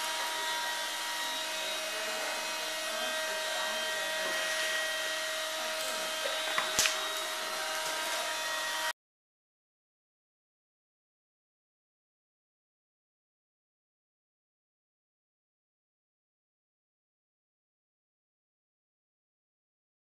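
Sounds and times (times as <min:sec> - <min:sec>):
whirring room hum with tones: 0:00.0 - 0:09.0.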